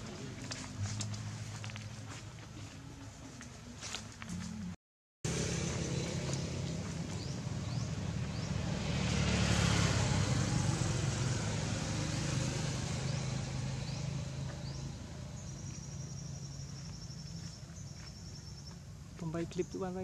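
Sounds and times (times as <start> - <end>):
vehicle passing by: 4.5 - 18.5
faint rising chirps: 11.9 - 18.9.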